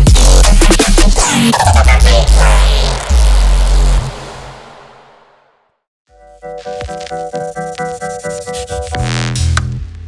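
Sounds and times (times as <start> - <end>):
gritty synth bass: 0.0 - 4.9, 8.1 - 10.0.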